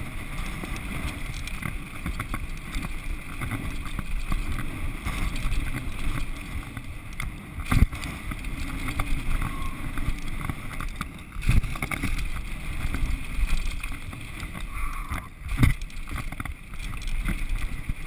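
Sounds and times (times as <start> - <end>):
bike tyres and suspension rattling: 0.0 - 18.0
wind buffeting microphone: 0.0 - 18.0.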